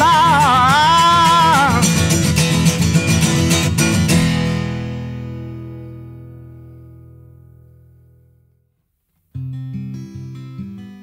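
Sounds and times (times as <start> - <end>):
acoustic guitar strumming: 0.0 - 8.6, 9.2 - 11.0.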